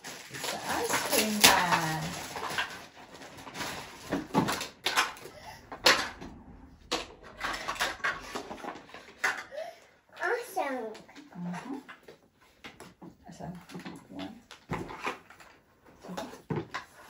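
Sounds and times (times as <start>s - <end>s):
plastic rustling: 0.0s - 9.8s, 10.6s - 17.0s
plastic knocks and clatters: 0.1s - 9.5s, 10.9s - 17.0s.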